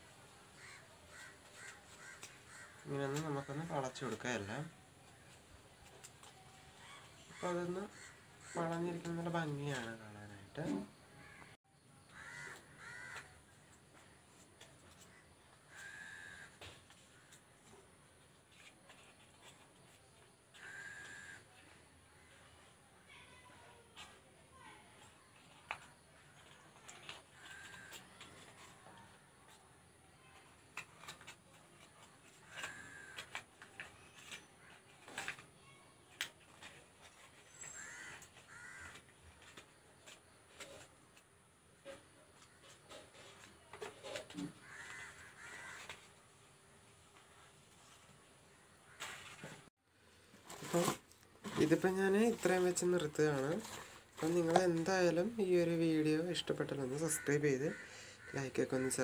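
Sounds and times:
crow cawing faintly: 0.5s - 5.3s, 5.9s - 9.9s, 10.7s - 14.2s, 14.9s - 35.9s, 36.5s - 41.2s, 41.8s - 46.3s, 56.8s - 59.0s.

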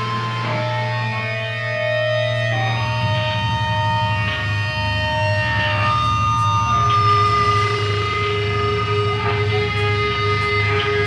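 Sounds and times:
electric guitar sustained notes: 0.0s - 11.0s
low bass drone: 0.0s - 11.0s.

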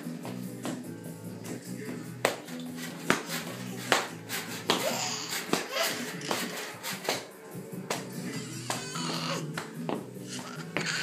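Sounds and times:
background music: 0.0s - 11.0s
baby jumper knocking: 3.0s - 7.3s
baby squealing: 4.7s - 6.3s, 8.3s - 9.5s, 10.2s - 11.0s.

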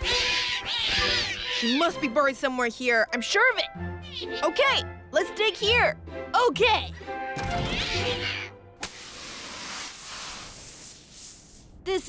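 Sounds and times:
light background music: 0.0s - 9.1s
rushing spray of sand: 8.8s - 11.7s.

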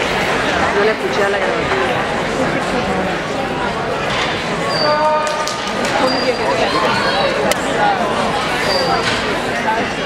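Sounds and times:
chatter echoing in a hall: 0.0s - 10.0s.

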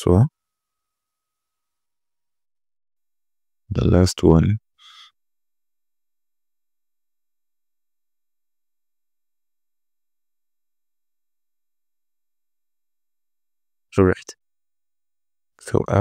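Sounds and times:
person speaking: 3.7s - 4.6s.

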